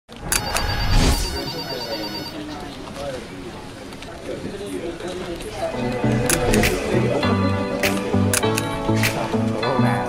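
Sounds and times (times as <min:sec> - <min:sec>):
voices talking: 0:00.4 - 0:08.0.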